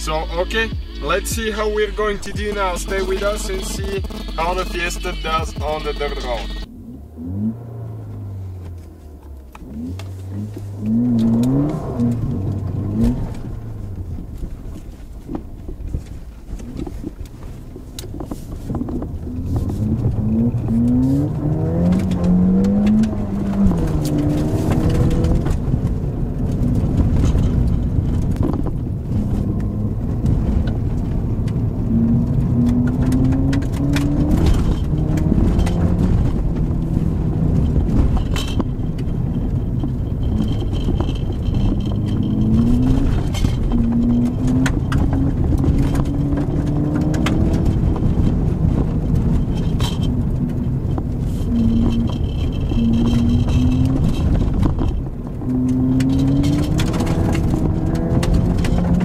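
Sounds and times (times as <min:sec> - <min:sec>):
tyres on gravel: 0:00.0 - 0:06.7, 0:30.2 - 0:59.0
car engine revving: 0:00.0 - 0:59.0.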